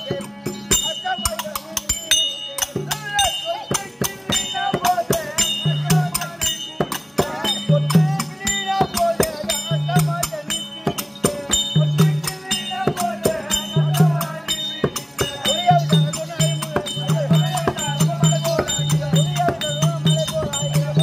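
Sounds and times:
hand drum fast rhythm: 0:00.0 - 0:21.0
small cymbals or jingles: 0:00.0 - 0:21.0.

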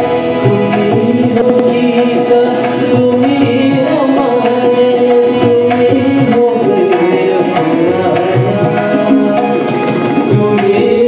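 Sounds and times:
harmonium holding notes: 0:00.0 - 0:11.0
man singing: 0:00.0 - 0:11.0
tabla playing: 0:00.0 - 0:11.0.

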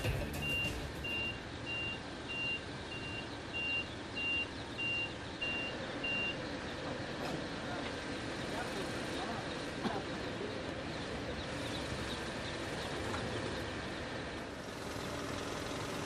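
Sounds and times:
truck reversing alarm beeping: 0:00.0 - 0:07.3
steady background noise: 0:00.0 - 0:16.0.

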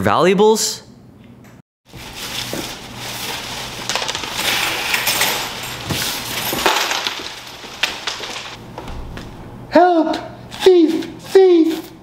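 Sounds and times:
plastic bag crinkling: 0:01.9 - 0:08.6
keys clinking: 0:03.8 - 0:08.6.

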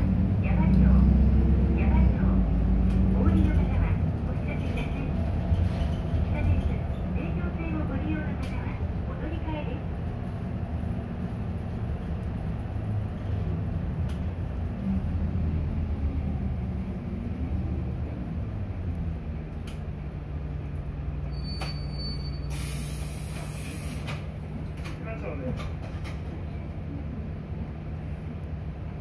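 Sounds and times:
bus engine rumble: 0:00.0 - 0:29.0
air hiss: 0:22.5 - 0:24.2.

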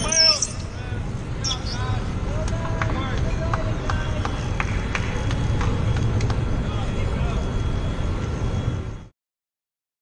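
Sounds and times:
steady low rumble: 0:00.0 - 0:09.1.

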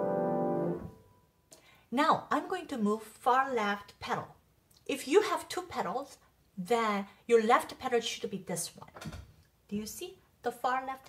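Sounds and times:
grand piano chord ringing: 0:00.0 - 0:01.2.

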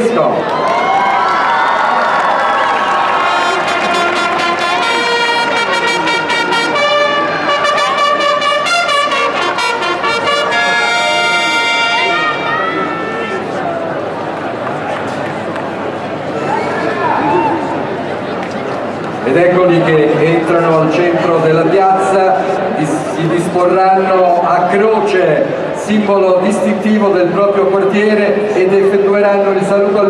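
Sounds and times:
crowd noise: 0:00.0 - 0:30.0
herald trumpets playing fanfare: 0:02.9 - 0:13.6.

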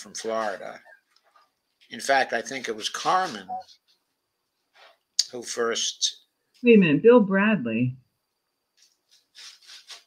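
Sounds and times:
faint scratchy noises: 0:00.0 - 0:06.2, 0:08.8 - 0:10.0.

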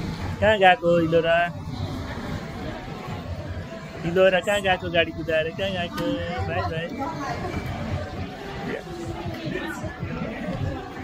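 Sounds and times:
indistinct voices chattering: 0:00.0 - 0:11.0.

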